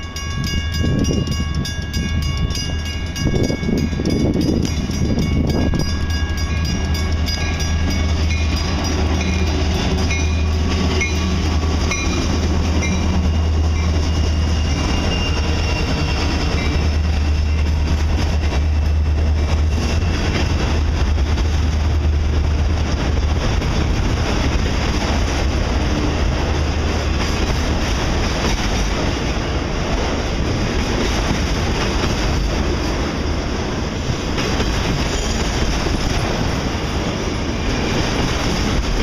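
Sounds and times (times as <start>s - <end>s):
crossing warning bell: 0.0s - 21.0s, 23.6s - 32.7s, 33.5s - 39.0s
freight cars rolling on rails: 0.0s - 39.0s
locomotive engines droning: 0.0s - 39.0s.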